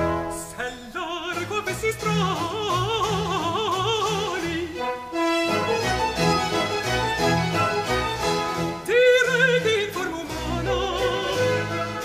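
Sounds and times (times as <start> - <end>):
orchestra playing: 0.0 - 12.0
woman singing opera aria: 0.5 - 4.8, 8.8 - 12.0.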